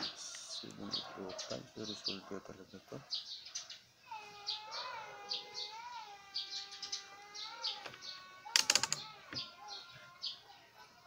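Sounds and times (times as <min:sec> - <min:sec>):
small birds chirping: 0:00.0 - 0:11.0
sharp clicks: 0:07.8 - 0:09.1.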